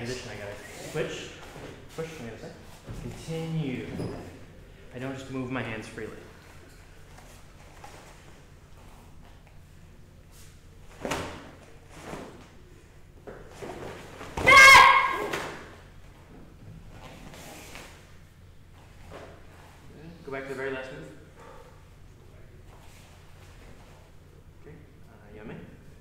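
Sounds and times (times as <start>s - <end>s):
person shouting sharply: 14.4s - 15.6s.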